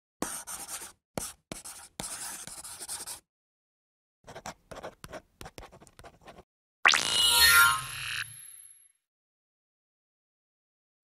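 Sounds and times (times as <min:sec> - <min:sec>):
pen scratching on paper: 0:00.2 - 0:03.2, 0:04.3 - 0:06.5.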